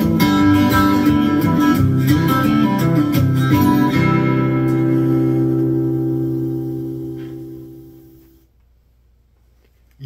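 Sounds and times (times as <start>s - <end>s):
acoustic guitar chord ringing: 0.0s - 8.2s.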